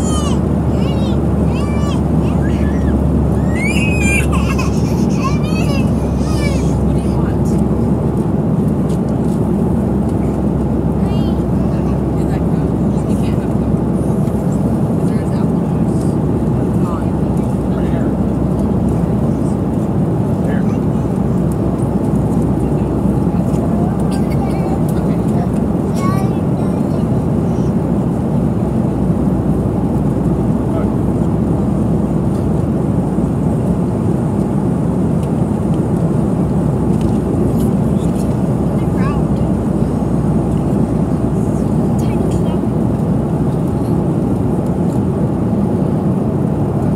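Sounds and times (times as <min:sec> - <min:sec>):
airliner cabin rumble: 0:00.0 - 0:46.9
faint passenger voices: 0:00.0 - 0:46.9.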